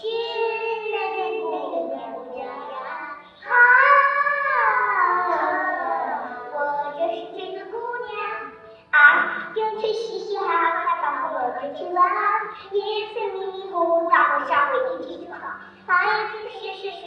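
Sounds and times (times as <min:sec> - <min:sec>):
girls singing: 0:00.0 - 0:09.7.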